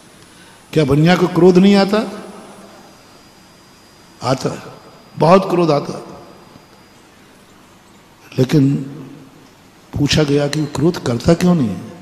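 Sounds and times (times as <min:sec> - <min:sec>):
room hiss: 0:00.0 - 0:12.0
thin high whine: 0:00.0 - 0:12.0
man speaking over loudspeakers: 0:00.8 - 0:02.5, 0:04.2 - 0:06.3, 0:08.3 - 0:09.0, 0:10.0 - 0:12.0.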